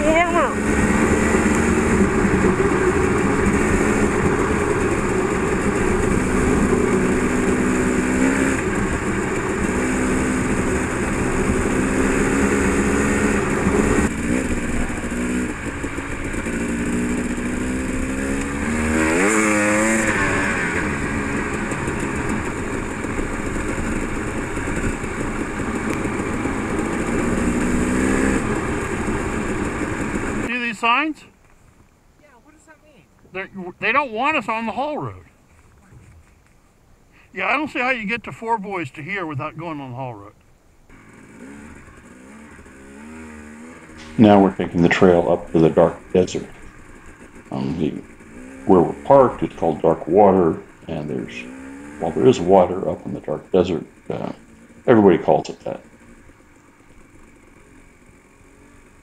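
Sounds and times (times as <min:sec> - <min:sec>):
dirt bike engine running: 0:00.0 - 0:40.1, 0:40.9 - 0:59.0.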